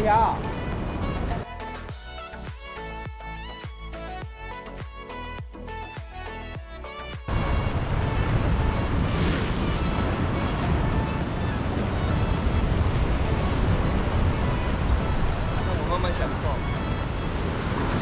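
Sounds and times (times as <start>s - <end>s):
wind rumble on microphone: 0.0s - 1.4s, 7.3s - 18.0s
sea surf washing over rocks: 7.3s - 18.0s
faint background music: 12.9s - 18.0s.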